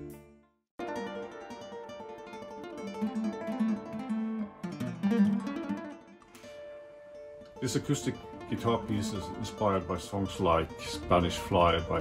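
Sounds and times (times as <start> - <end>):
acoustic guitar melody: 0.0 - 12.0.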